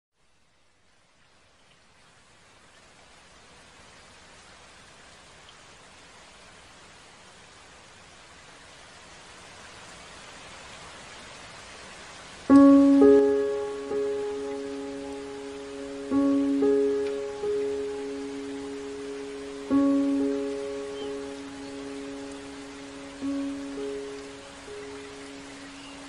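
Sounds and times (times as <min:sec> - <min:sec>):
soft rain-like hiss: 0:00.1 - 0:26.0
meditative background music: 0:12.5 - 0:26.0.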